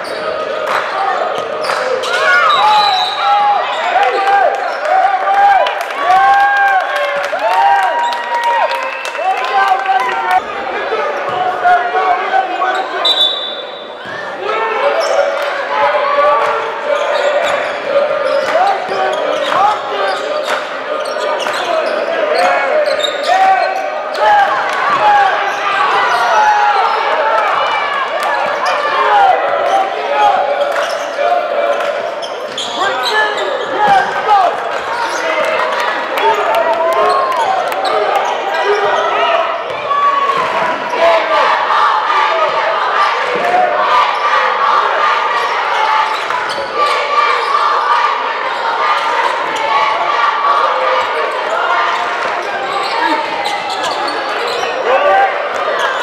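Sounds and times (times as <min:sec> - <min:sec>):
players and crowd shouting: 0:00.0 - 0:56.0
sneaker squeaks and clicks: 0:01.4 - 0:03.8, 0:12.7 - 0:14.2, 0:17.0 - 0:24.3, 0:30.6 - 0:34.1, 0:46.0 - 0:47.0, 0:51.9 - 0:54.9.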